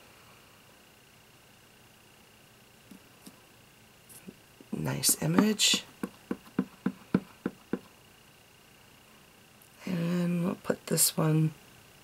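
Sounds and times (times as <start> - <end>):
stamp block tapping on ink pad: 5.1 - 7.9.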